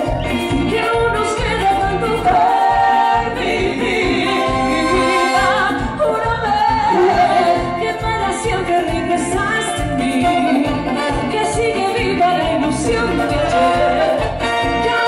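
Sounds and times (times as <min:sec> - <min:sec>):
latin dance band playing: 0:00.0 - 0:15.0
person singing lead vocal: 0:00.0 - 0:15.0.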